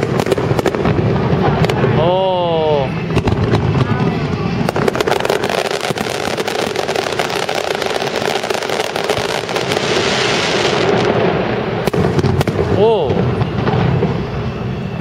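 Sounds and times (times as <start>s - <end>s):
fireworks bursting overhead: 0.0s - 15.0s.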